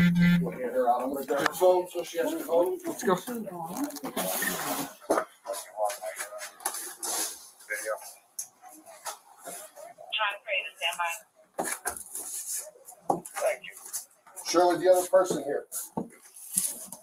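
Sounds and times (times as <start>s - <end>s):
muffled talk: 0.3s - 11.2s, 12.4s - 15.9s.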